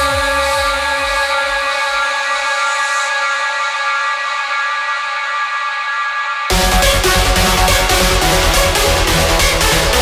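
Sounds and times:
sustained synth chord: 6.5 - 10.0.

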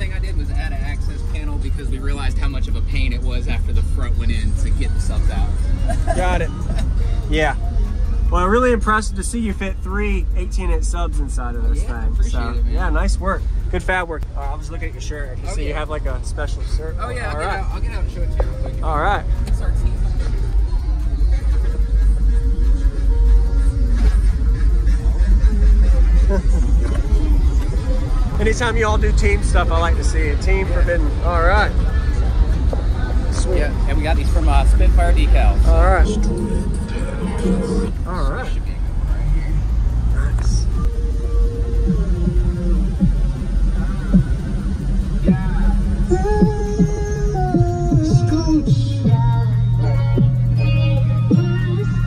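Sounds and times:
music with heavy bass: 0.0 - 52.0.

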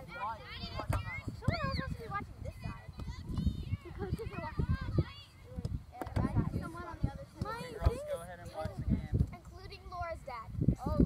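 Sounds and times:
wind rumble on microphone: 0.6 - 11.0.

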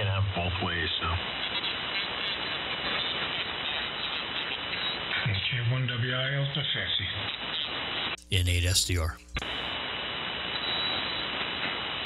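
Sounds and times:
shortwave radio static hiss: 8.2 - 9.7.

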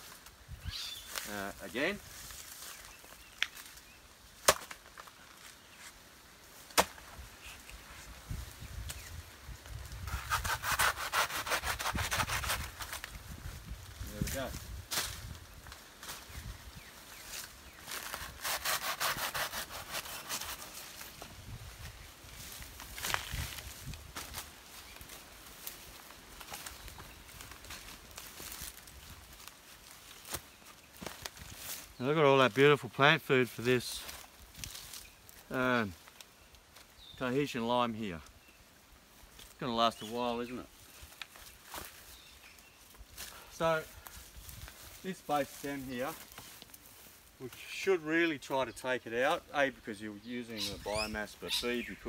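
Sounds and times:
hand saw cutting plant stem: 10.1 - 13.0, 18.0 - 20.8.

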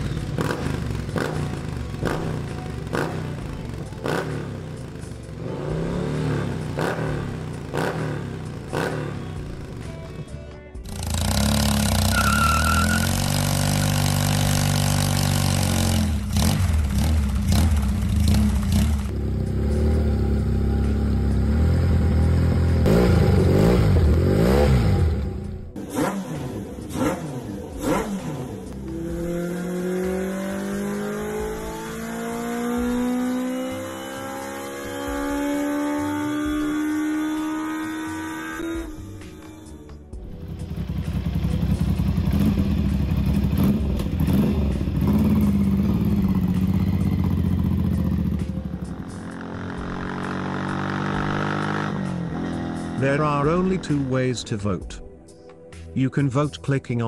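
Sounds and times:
motorcycle engine revving: 0.0 - 54.1.

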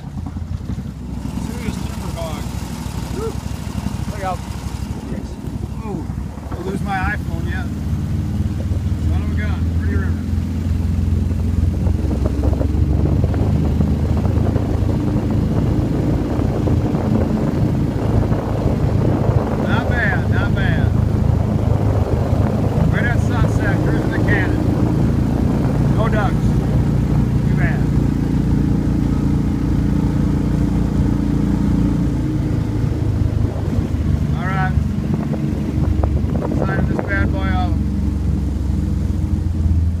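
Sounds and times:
boat motor droning: 0.0 - 40.0.

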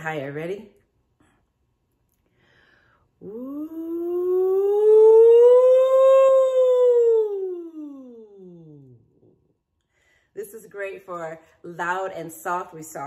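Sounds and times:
woman singing vocal siren: 3.2 - 9.0.

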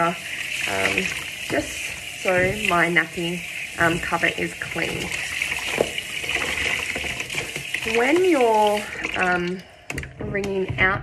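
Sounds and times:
tap water running into bucket: 0.0 - 10.8.

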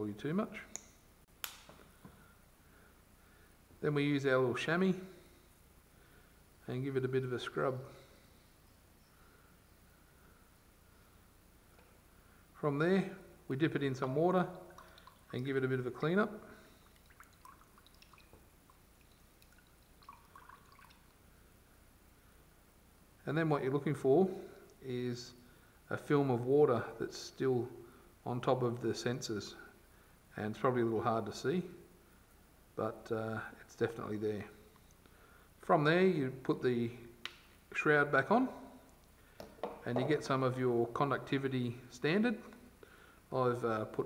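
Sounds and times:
water dripping and splashing: 14.6 - 15.5, 16.6 - 21.2
faint taps on table: 39.4 - 40.2.

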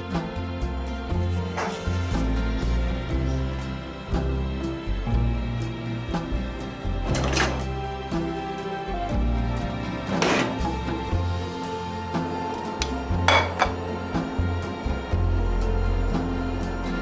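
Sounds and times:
background music with bass line: 0.0 - 17.0
metal kitchen utensils clattering: 7.1 - 7.7, 12.6 - 13.8.

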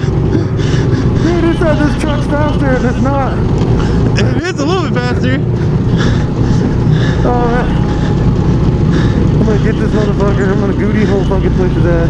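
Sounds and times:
go-kart engine droning: 0.0 - 12.0.

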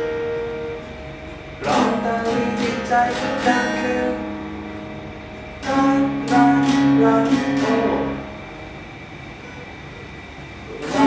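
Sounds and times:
acoustic guitar strummed chord: 0.0 - 9.6, 10.7 - 11.0.

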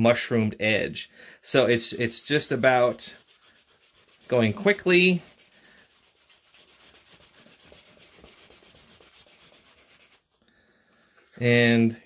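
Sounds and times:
wood rubbing on leather edge: 2.9 - 10.4.

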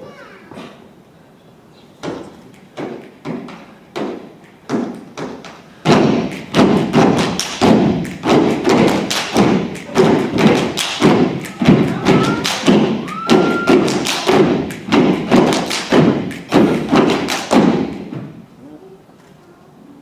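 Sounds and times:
stomps and claps in unison: 2.0 - 18.4.

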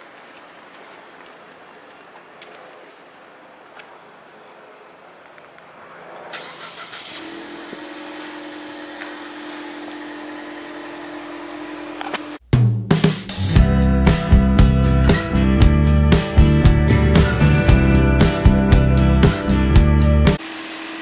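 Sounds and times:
car engine starting and idling: 6.1 - 9.5.

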